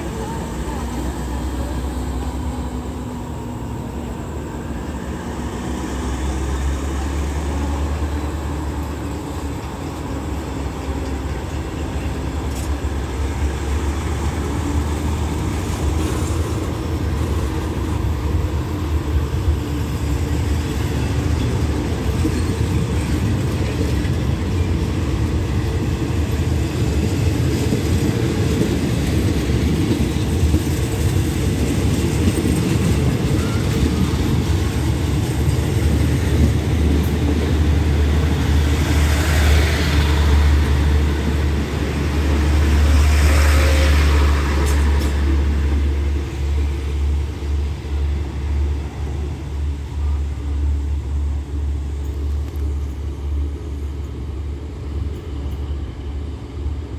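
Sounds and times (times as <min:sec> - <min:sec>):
train carriages rumbling on rails: 0:00.0 - 0:56.9.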